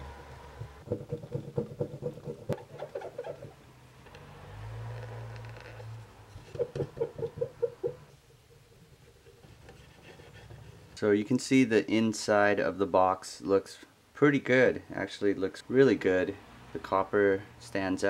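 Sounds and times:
cotton swab scrubbing glass seams: 1.0 - 3.6.

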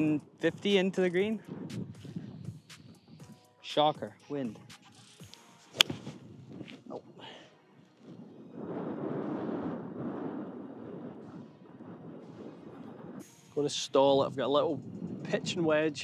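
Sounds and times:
golf club striking ball: 5.7 - 6.2.

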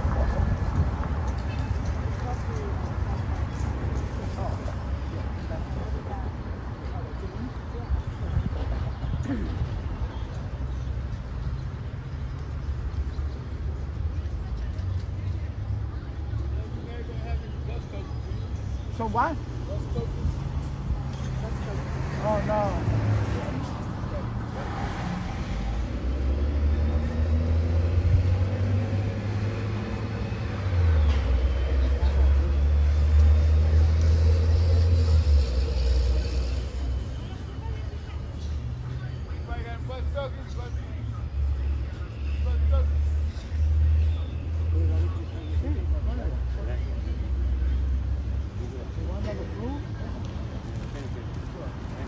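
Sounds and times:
faint voices: 0.0 - 52.0
traffic rumble: 0.0 - 52.0.

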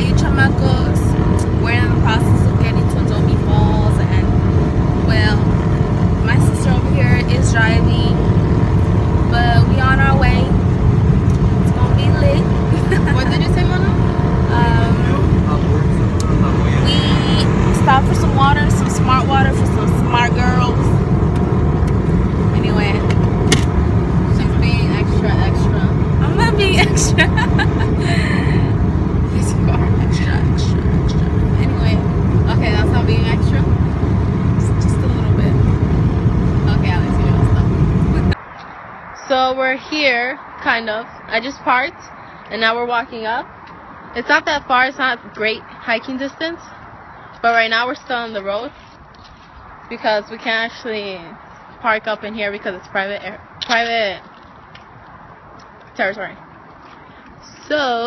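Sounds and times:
car cabin road and engine rumble: 0.0 - 38.7.

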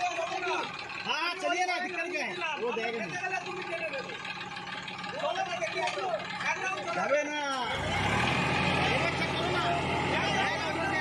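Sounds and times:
faint voices talking: 0.0 - 11.0
tractor diesel engine running: 0.0 - 11.0.

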